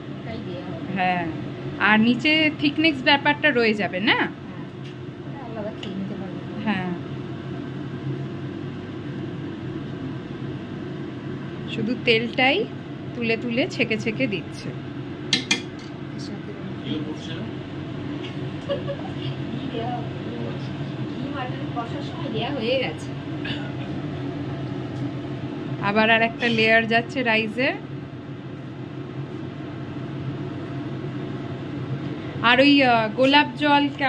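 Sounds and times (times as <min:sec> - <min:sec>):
low mechanical hum: 0:00.0 - 0:34.0.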